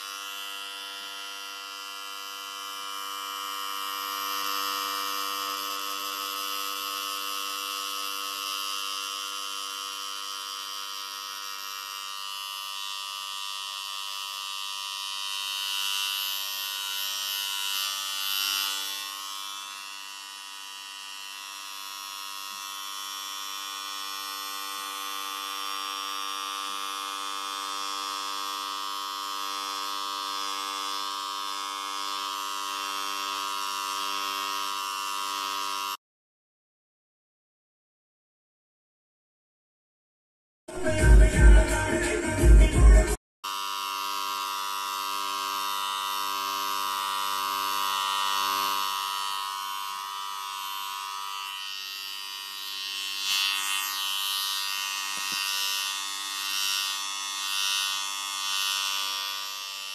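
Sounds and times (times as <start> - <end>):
electric hair clipper buzzing: 0.0 - 36.0, 40.7 - 59.9
music with heavy beat: 40.7 - 43.2.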